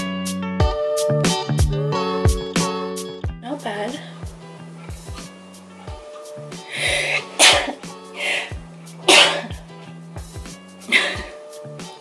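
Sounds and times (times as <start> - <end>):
background music with steady beat: 0.0 - 12.0
breathy inhale: 6.5 - 7.4, 8.1 - 8.6
person sneezing: 6.7 - 9.6, 10.9 - 11.4.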